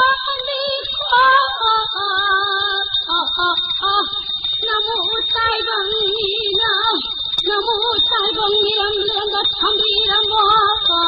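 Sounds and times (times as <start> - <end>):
person singing with vibrato: 0.0 - 11.0
thin high-pitched whine: 0.0 - 11.0.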